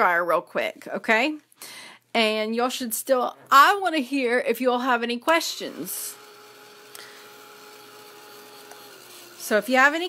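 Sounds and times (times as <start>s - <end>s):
hair dryer running: 5.4s - 10.0s.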